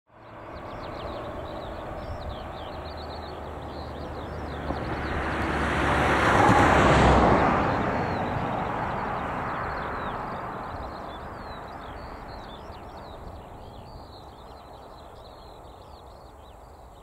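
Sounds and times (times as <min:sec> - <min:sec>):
birds chirping: 0:00.1 - 0:06.0, 0:07.4 - 0:17.0
car driving past: 0:00.2 - 0:14.9.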